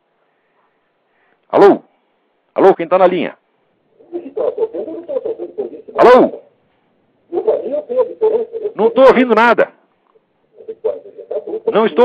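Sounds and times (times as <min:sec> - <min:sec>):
garbled voice over phone line: 0:04.0 - 0:06.5, 0:07.3 - 0:09.6, 0:10.6 - 0:12.0.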